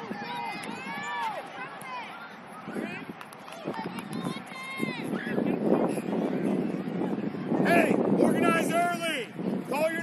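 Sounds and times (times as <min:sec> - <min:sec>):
children shouting: 0:00.0 - 0:02.9.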